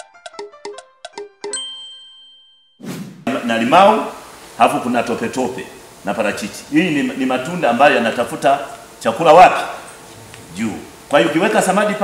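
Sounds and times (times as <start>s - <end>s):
chime-like jingle with ding: 1.5s - 2.8s.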